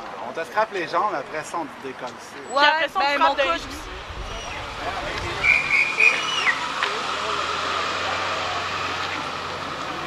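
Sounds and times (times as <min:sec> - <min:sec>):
indistinct voices: 0:02.7 - 0:10.0
vehicle engine running: 0:03.6 - 0:10.0.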